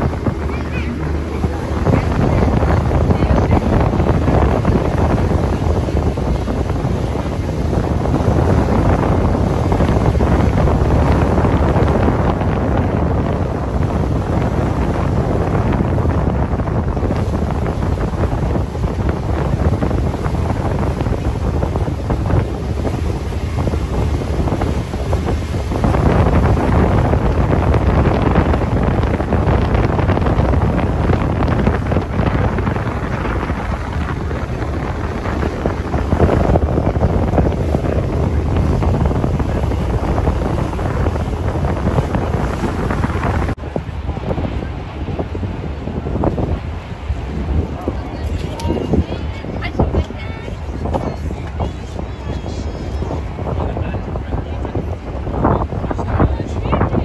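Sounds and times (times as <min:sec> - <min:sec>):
boat engine rumble: 0:00.0 - 0:57.0
boat wash on water: 0:00.0 - 0:57.0
wind buffeting microphone: 0:00.0 - 0:57.0.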